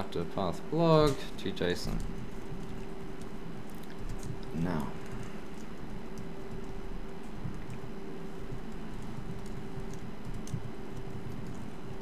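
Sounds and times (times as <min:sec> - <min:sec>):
steady low hum: 0:00.0 - 0:12.0
laptop keyboard typing: 0:01.6 - 0:12.0.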